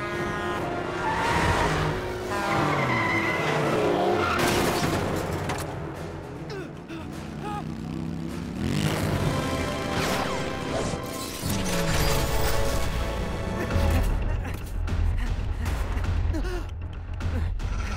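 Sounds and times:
background music: 0.0 - 17.9
tyres skidding: 0.2 - 13.5
car engine revving: 7.2 - 10.7.

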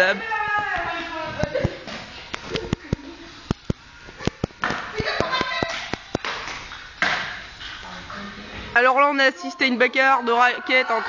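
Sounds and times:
loud voices: 9.3 - 11.0.

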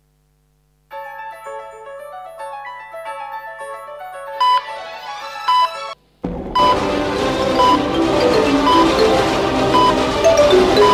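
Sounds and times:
light keyboard melody: 0.9 - 10.9
high electronic beeps: 6.6 - 6.9, 7.5 - 7.9, 8.6 - 9.0, 9.8 - 10.9.

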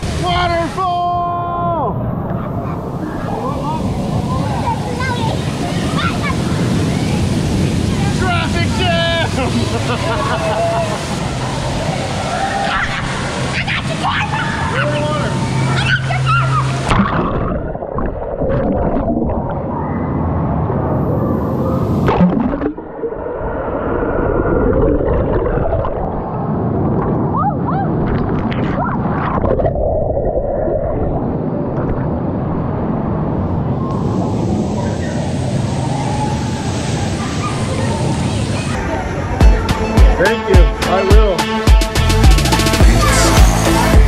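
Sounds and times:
water sloshing and gurgling: 9.3 - 35.9.

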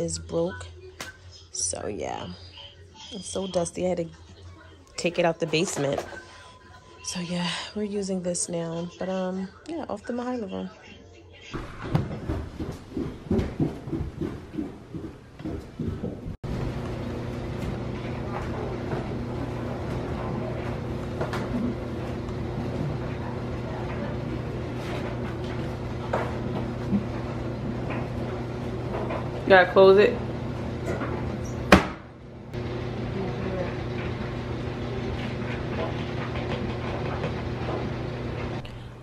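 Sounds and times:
irregular knocks and clatter: 11.6 - 16.4
laundry machine humming: 11.6 - 39.0.

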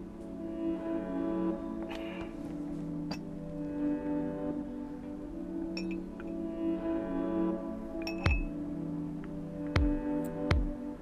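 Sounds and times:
soft bowed strings music: 0.0 - 11.0.

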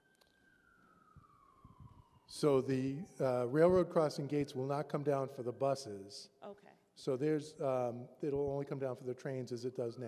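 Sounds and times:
faint high tone sliding down: 0.0 - 6.2.

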